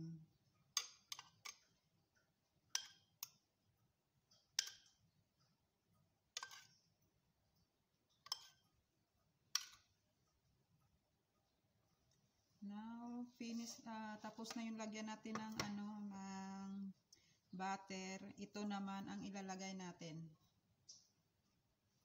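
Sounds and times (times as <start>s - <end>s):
metal spoon clinking on dishes: 0.7s - 1.7s, 2.7s - 3.4s, 4.4s - 5.0s, 6.3s - 6.8s, 8.1s - 8.8s, 9.5s - 9.9s.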